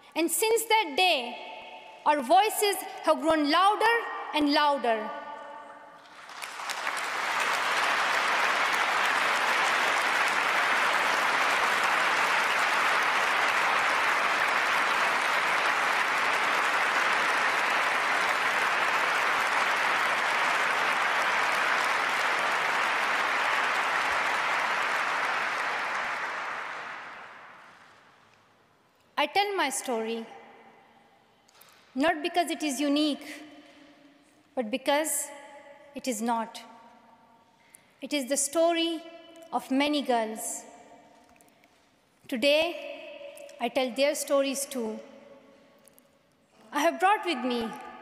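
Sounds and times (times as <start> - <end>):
audience applause: 6.1 - 28.0.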